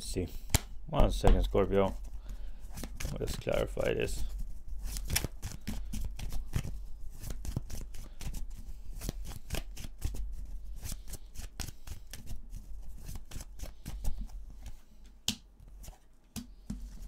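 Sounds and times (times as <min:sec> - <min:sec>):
cards being shuffled: 0:01.9 - 0:17.0.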